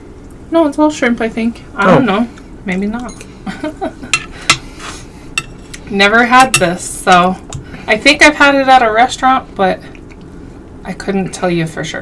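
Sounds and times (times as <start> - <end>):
utensils clicking against a plate: 5.4 - 6.8.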